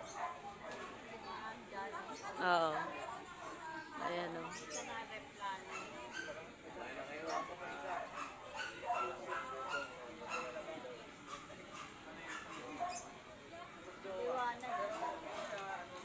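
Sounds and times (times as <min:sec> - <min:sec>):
people chattering: 0:00.0 - 0:16.0
dog barking: 0:00.1 - 0:01.0, 0:05.7 - 0:06.4, 0:07.3 - 0:10.6, 0:11.7 - 0:13.1, 0:14.7 - 0:15.2.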